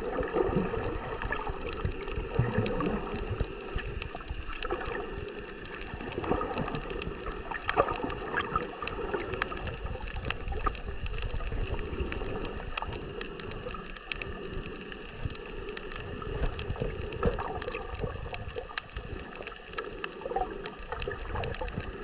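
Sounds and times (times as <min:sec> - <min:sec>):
muffled underwater water rush: 0:00.0 - 0:22.0
sharp underwater clicks and crackles: 0:00.0 - 0:22.0.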